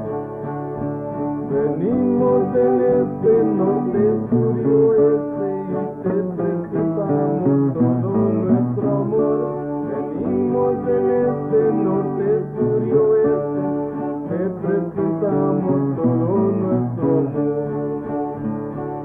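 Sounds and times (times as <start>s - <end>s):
acoustic guitar accompaniment: 0.0s - 19.0s.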